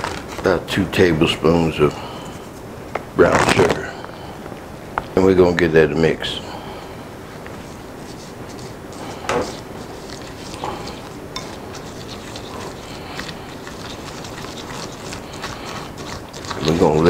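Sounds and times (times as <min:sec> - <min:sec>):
spoon stirring in ceramic bowl: 0:07.5 - 0:17.0.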